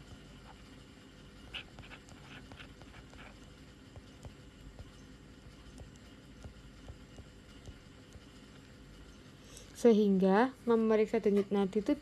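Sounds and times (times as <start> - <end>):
stylus scratching on tablet screen: 0.0 - 9.4.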